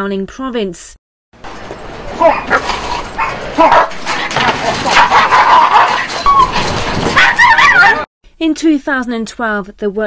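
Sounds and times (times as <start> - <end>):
large dog barking: 1.4 - 8.1.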